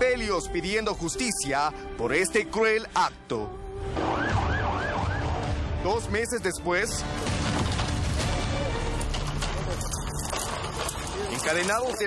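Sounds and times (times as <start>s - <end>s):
police siren yelping: 4.0s - 5.4s.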